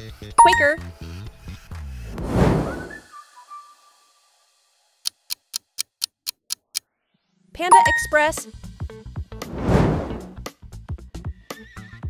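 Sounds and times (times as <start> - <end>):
whoosh: 2.1 - 3.0, 9.4 - 10.4
upbeat background music: 7.7 - 8.4.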